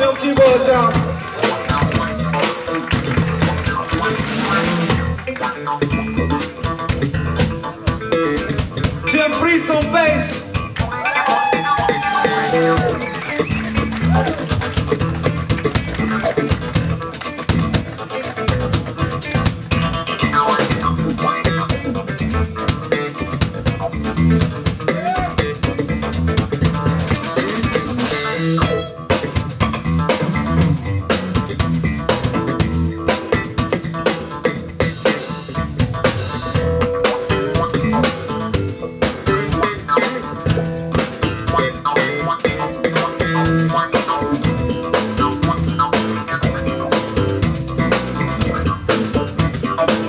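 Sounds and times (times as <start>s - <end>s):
drum kit: 0.0s - 50.0s
electric guitar: 0.0s - 50.0s
funk band playing: 0.0s - 50.0s.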